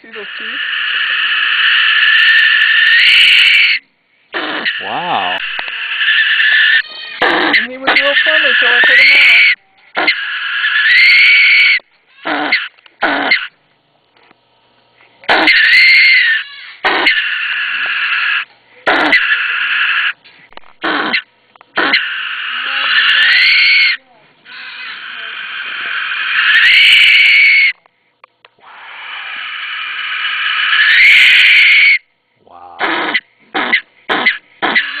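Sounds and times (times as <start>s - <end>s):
possum screeching: 0.0s - 13.6s, 15.3s - 20.2s, 20.8s - 27.8s, 28.6s - 35.0s.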